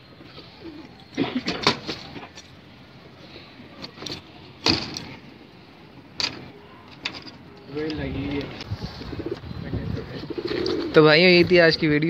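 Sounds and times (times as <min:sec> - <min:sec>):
pigeons cooing: 0:00.2 - 0:02.3, 0:08.9 - 0:11.0.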